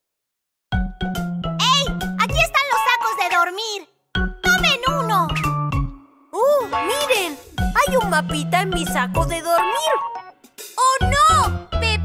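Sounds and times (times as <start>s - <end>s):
child-like voice exclaiming: 1.6s - 5.4s, 6.4s - 8.0s, 10.8s - 12.0s
bouncy cartoon song with singing: 6.4s - 12.0s.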